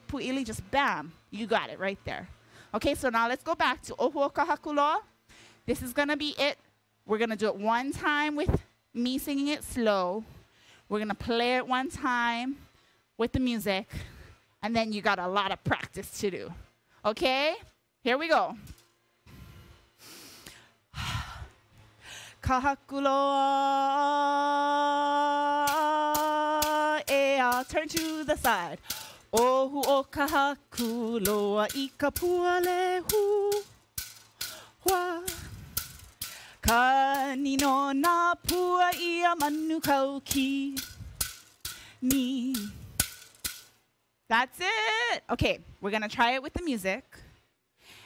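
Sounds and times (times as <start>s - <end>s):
woman breathing: 5.2s - 5.6s, 10.4s - 10.9s, 19.3s - 22.4s, 28.8s - 29.3s, 35.5s - 36.6s, 41.7s - 42.0s, 47.8s - 48.0s
woman singing held notes: 22.4s - 33.7s, 34.6s - 35.5s, 36.6s - 40.8s, 42.0s - 42.8s
bamboo rattles clicking: 25.6s - 43.8s.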